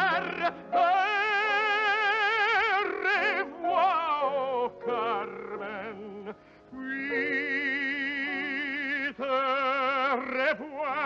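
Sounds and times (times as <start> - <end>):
operatic tenor singing: 0.0 - 11.0.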